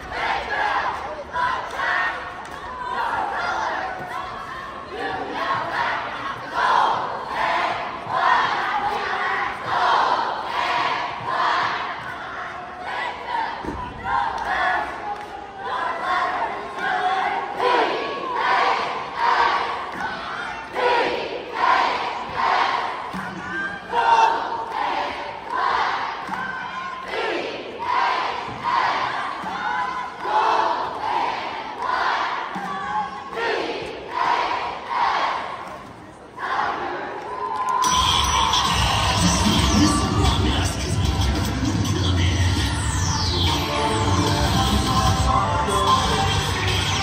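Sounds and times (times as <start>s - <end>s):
cheerleaders chanting in unison: 0.0s - 47.0s
music with heavy bass beat: 37.8s - 47.0s.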